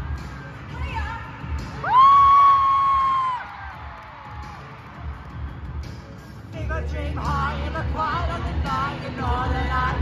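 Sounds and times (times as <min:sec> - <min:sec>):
amplified concert music: 0:00.0 - 0:10.0.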